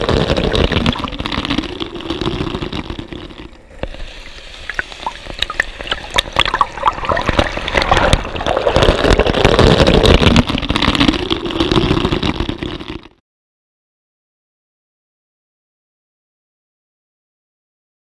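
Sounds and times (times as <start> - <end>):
water churning and bubbling: 0.0 - 13.2.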